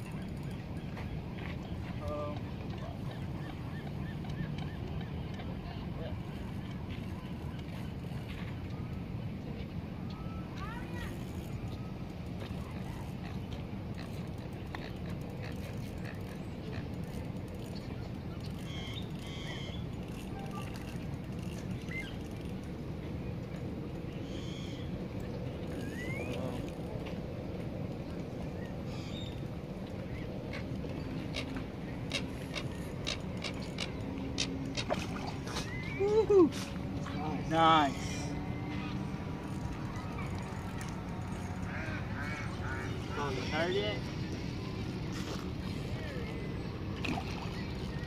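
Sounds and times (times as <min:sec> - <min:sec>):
low outdoor rumble: 0:00.0 - 0:48.0.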